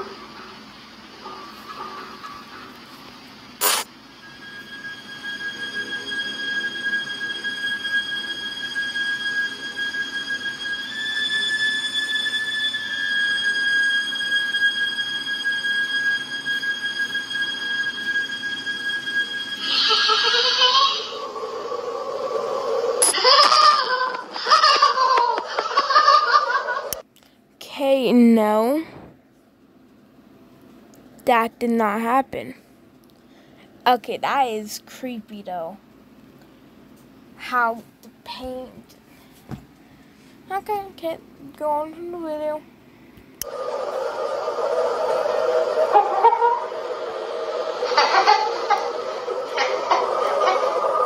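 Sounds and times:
sharp click: 3.6s - 3.9s
steady high-pitched tone: 3.6s - 27.0s, 43.4s - 51.0s.

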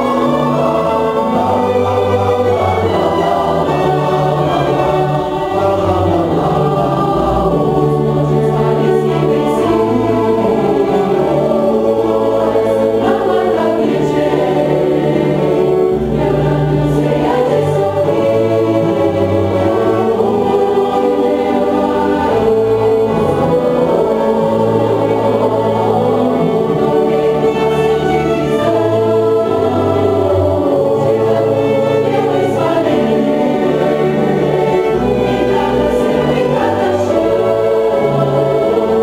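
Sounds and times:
choir singing: 0.0s - 39.0s
string orchestra: 0.0s - 39.0s.

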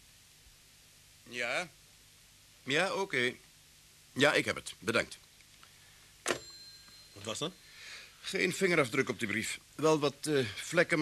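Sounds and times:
receiver click on cradle: 6.3s - 6.5s.

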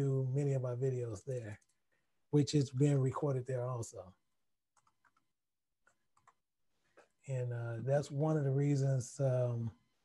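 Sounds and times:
faint computer clicks: 4.7s - 7.2s.

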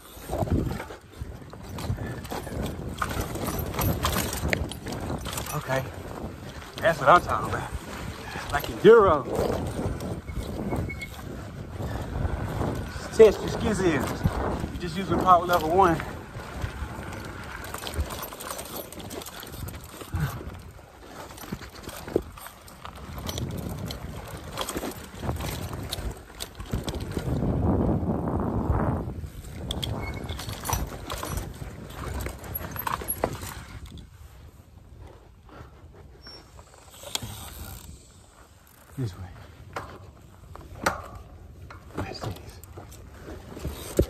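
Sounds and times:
bike knocks and rattles: 0.0s - 34.2s, 34.8s - 44.0s
tyre and trail noise: 0.0s - 44.0s.

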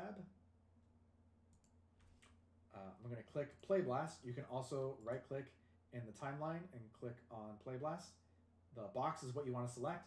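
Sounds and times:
low steady hum: 0.0s - 10.0s
computer mouse clicks: 1.5s - 2.4s.

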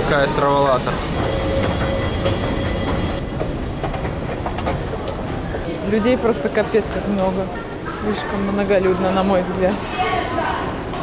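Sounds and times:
machinery and rail rumble: 0.0s - 11.0s.

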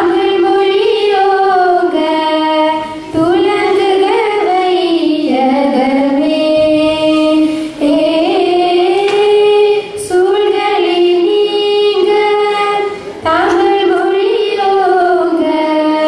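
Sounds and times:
girls singing into microphones: 0.0s - 16.0s.

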